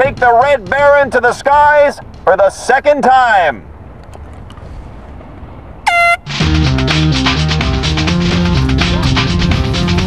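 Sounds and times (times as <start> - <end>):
outdoor background noise: 0.0 - 6.6
air horn blast: 5.9 - 6.4
upbeat music with bass line: 6.1 - 10.0.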